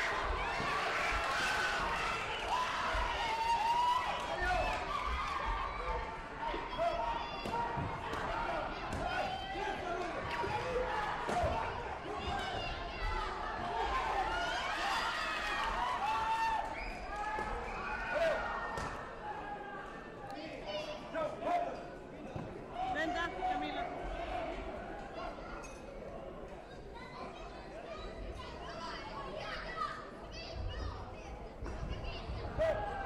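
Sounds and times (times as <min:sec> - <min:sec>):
chatter of many voices: 0:00.0 - 0:33.0.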